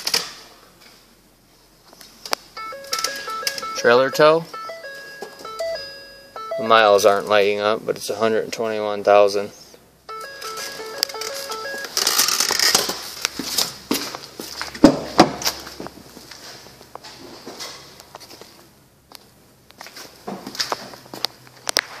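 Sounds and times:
electronic warning chime tones: 0:02.6 - 0:07.3, 0:10.1 - 0:12.4.

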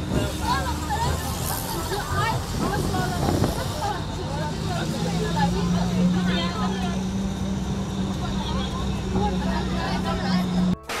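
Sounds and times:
bus engine humming: 0:00.0 - 0:11.0
passengers chattering: 0:00.0 - 0:11.0.

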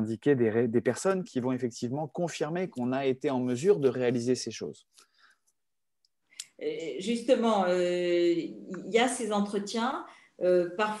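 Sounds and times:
woman speaking: 0:06.6 - 0:11.0.

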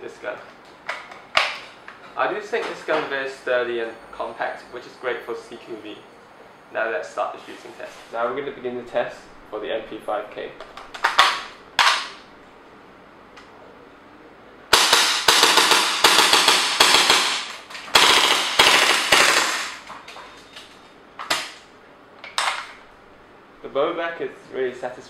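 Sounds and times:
airsoft gun automatic fire: 0:14.7 - 0:19.8.

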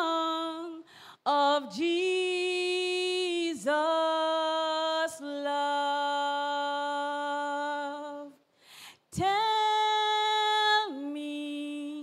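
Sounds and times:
woman singing unaccompanied: 0:00.0 - 0:08.4, 0:09.1 - 0:12.0
singer breathing: 0:00.8 - 0:01.3, 0:08.5 - 0:09.1.

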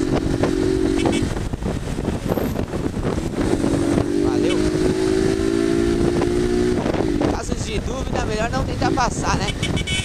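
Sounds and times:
motorcycle engine running: 0:00.0 - 0:10.0
wind rushing over microphone: 0:00.0 - 0:10.0.

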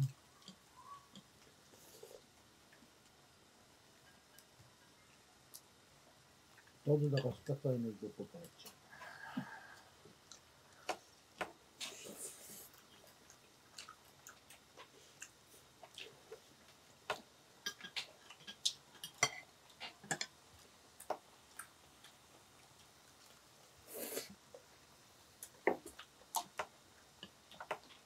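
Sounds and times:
chopsticks and tongs clicking on plates: 0:17.1 - 0:20.4.

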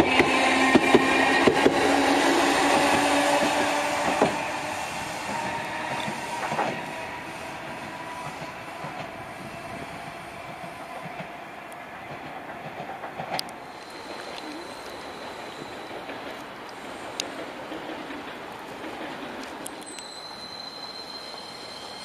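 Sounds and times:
tram motor whine: 0:00.0 - 0:12.4
tram wheels clicking over rail joints: 0:00.0 - 0:22.0.

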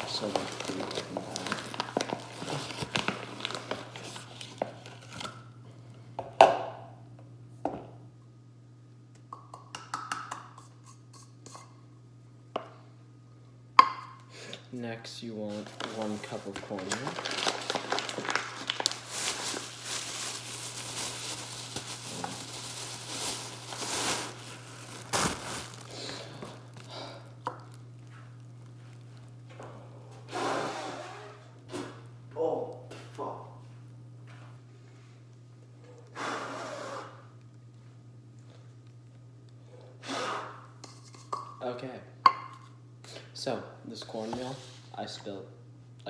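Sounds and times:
plastic bag crinkling: 0:00.0 - 0:05.3, 0:15.4 - 0:29.4.

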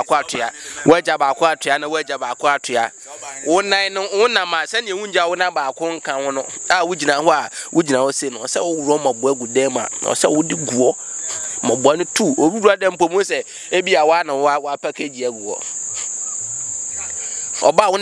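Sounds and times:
crickets chirring: 0:00.0 - 0:18.0
men talking: 0:00.0 - 0:18.0.

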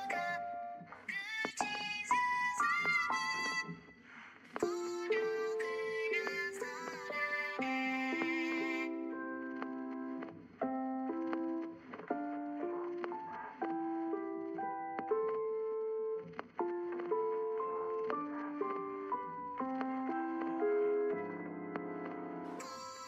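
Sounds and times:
keyboard playing sustained melody: 0:04.6 - 0:23.0.

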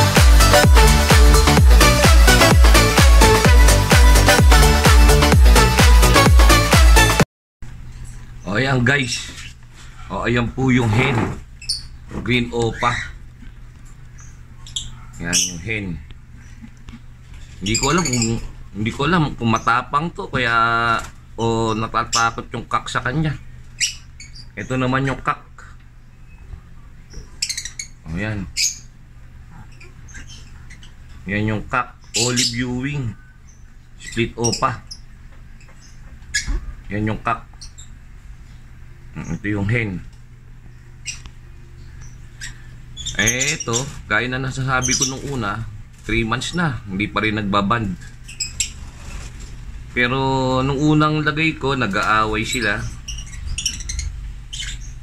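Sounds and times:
low steady hum: 0:07.7 - 0:55.0
birds chirping and squeaking: 0:08.1 - 0:55.0
low steady rumble: 0:45.5 - 0:55.0.

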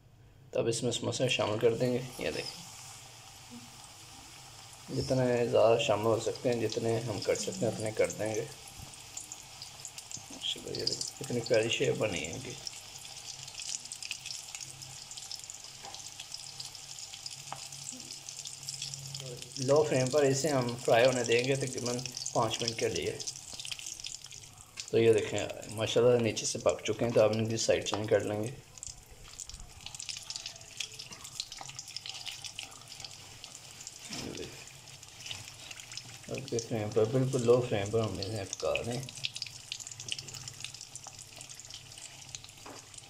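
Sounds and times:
food deep-frying in sizzling oil: 0:01.4 - 0:43.0.

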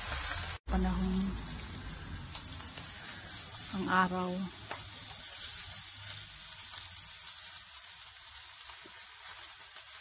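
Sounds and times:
outdoor background hiss: 0:00.0 - 0:09.3.

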